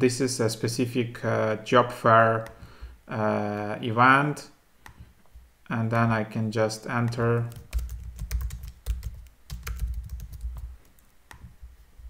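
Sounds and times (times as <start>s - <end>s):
keyboard typing: 7.0s - 11.6s.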